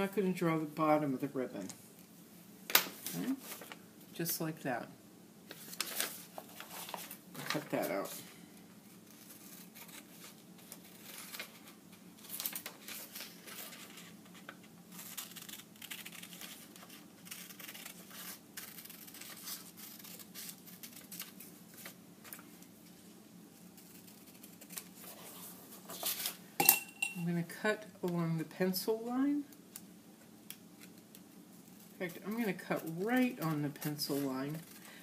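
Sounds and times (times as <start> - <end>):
paper rustling: 3.1 - 3.8, 5.5 - 8.2, 9.2 - 22.5, 23.8 - 26.4, 31.6 - 34.9
scissors snipping paper: 15.0 - 21.4.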